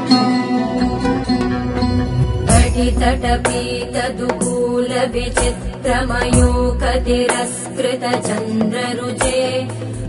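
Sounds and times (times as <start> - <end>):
steady drone: 0.0 - 7.3
percussion strokes: 0.0 - 10.0.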